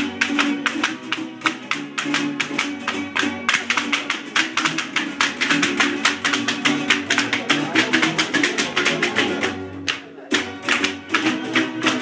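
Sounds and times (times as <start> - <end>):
folk music with plucked strings: 0.0 - 12.0.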